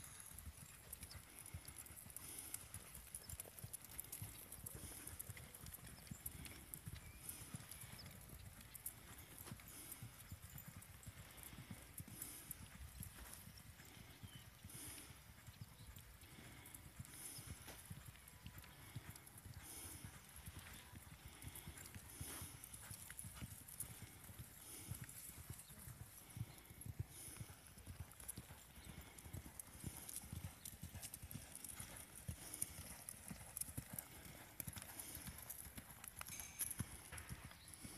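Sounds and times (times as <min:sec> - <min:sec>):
hoofbeats on sand: 0:00.1 - 0:37.9.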